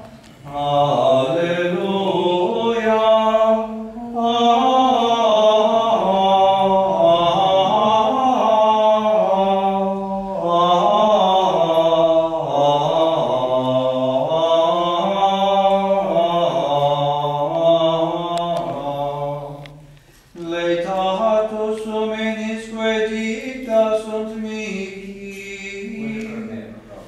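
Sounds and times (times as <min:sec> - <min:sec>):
plainchant sung in unison: 0:00.4 - 0:26.7.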